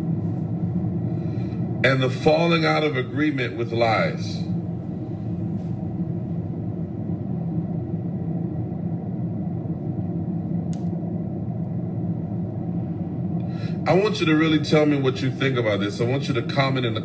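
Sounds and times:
car engine rumble inside cabin: 0.0 - 17.0.

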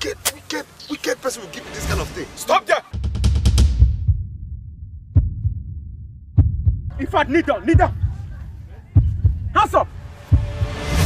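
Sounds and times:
throbbing suspense score: 2.9 - 11.0.

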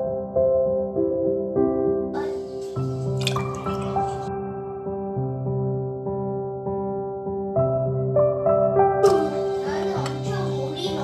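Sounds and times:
soft background music: 0.0 - 11.0
liquid pouring into pot of water: 2.9 - 4.3.

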